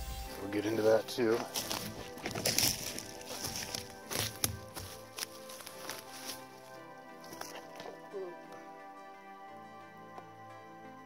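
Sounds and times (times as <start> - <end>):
rustling through bushes: 0.0 - 8.0
soft music with held chords: 0.0 - 11.0.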